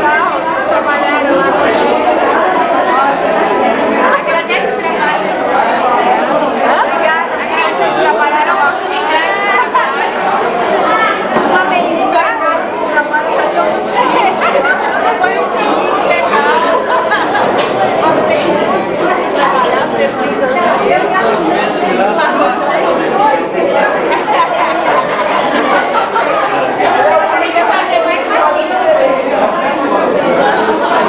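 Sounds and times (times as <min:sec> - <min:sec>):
loud babble of voices: 0:00.0 - 0:31.0.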